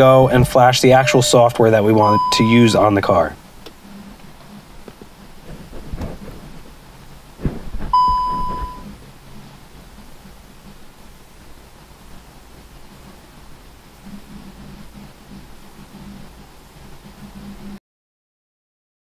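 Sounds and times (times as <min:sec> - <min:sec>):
electronic beep: 0:00.0 - 0:02.9, 0:07.9 - 0:08.9
soft knocks: 0:07.4 - 0:08.8.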